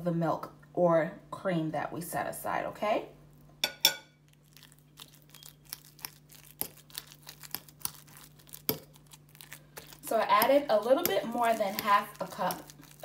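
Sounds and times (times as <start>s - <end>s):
faint steady hum: 0.0s - 13.0s
fork mashing potatoes in bowl: 5.0s - 13.0s.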